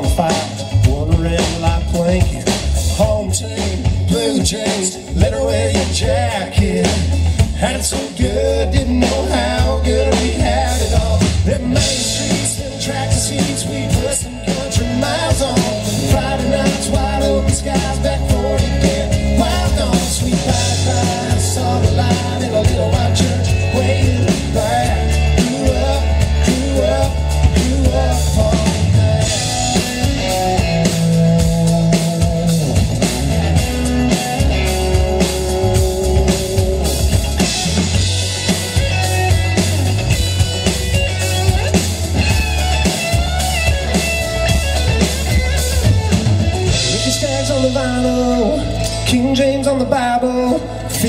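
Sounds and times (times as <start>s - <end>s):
drum kit beat: 0.0s - 50.1s
lead electric guitar: 0.0s - 51.0s
strummed acoustic guitars: 0.0s - 51.0s.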